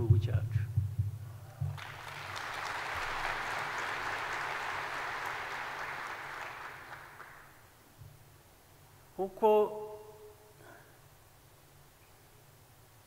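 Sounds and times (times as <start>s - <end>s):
audience applauding: 1.6s - 7.8s.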